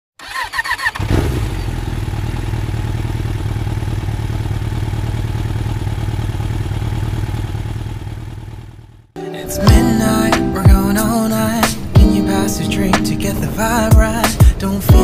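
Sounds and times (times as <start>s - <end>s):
motorcycle starter cranking: 0.2s - 1.8s
motorcycle engine idling: 0.8s - 9.2s.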